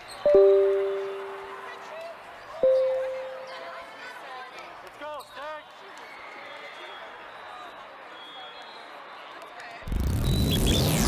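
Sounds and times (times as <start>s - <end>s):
echoing chatter: 0.0s - 5.0s.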